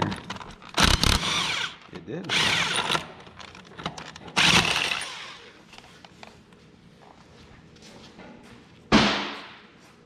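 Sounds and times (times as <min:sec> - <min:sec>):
impact wrench burst: 0:00.7 - 0:03.2, 0:04.4 - 0:05.4.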